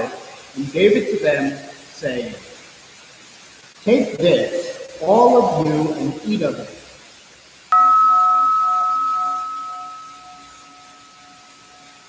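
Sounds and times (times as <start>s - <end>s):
altar bell ringing: 7.7s - 12.0s.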